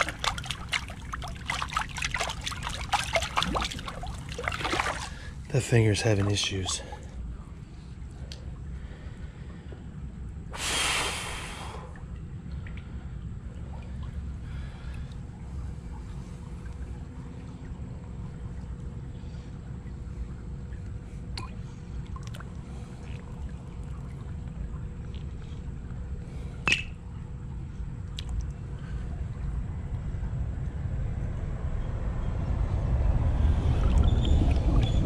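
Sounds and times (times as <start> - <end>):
water splash: 0.0 - 7.1
water trickling: 0.0 - 10.5, 11.6 - 30.1, 33.4 - 35.0
steady low rumble: 0.0 - 35.0.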